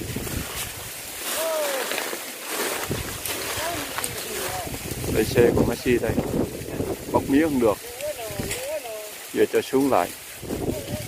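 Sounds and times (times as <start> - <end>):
wind buffeting microphone: 0.0 - 1.0, 2.8 - 8.8, 10.3 - 11.0
people calling out: 1.2 - 2.2.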